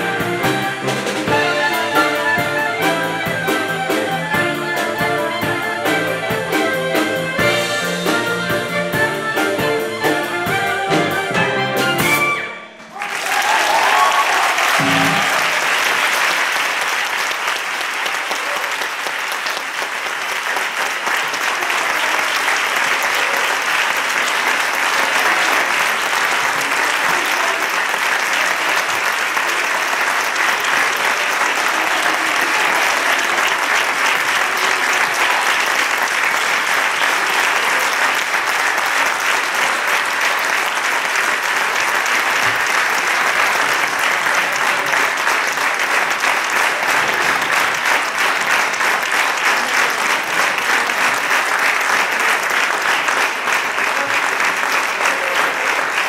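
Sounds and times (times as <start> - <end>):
audience applause: 0.0 - 56.0.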